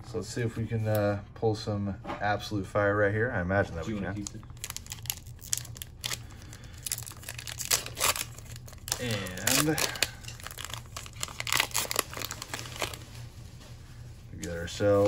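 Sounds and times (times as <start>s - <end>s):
foil wrapper tearing and crinkling: 4.2s - 13.0s.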